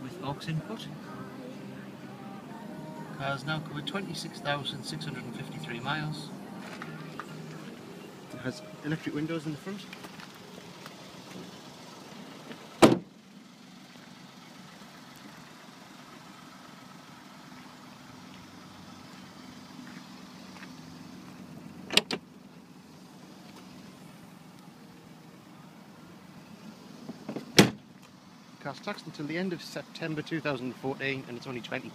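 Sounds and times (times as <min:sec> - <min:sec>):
car door thump: 0:12.8 - 0:13.1, 0:27.2 - 0:27.8.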